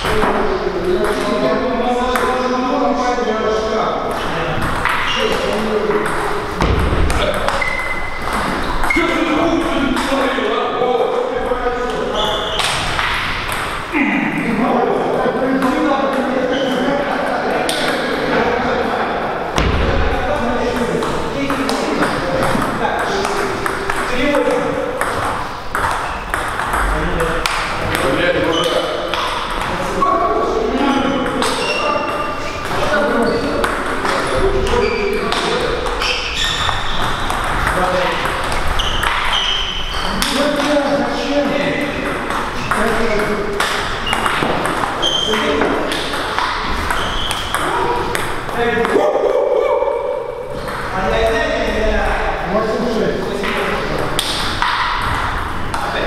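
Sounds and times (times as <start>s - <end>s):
people talking: 0.0s - 26.0s, 26.6s - 36.6s, 37.2s - 56.0s.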